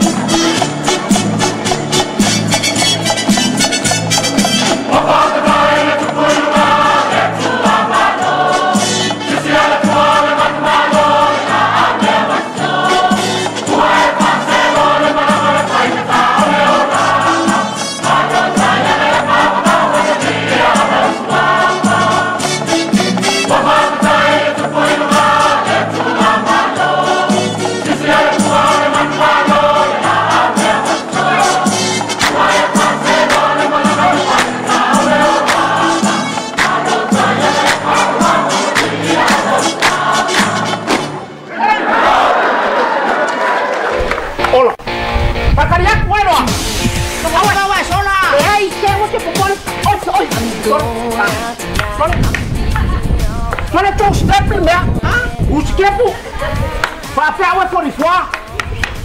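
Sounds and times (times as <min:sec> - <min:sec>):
stepping bass line: 0:00.0 - 0:41.2, 0:44.3 - 0:59.0
steady percussion: 0:00.0 - 0:41.3, 0:44.3 - 0:59.0
choir singing a hymn: 0:04.3 - 0:44.0.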